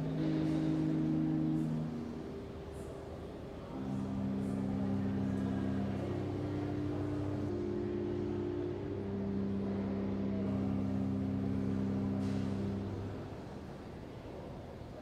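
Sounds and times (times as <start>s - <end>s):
pipe organ chords: 0.0s - 2.9s, 3.5s - 13.6s.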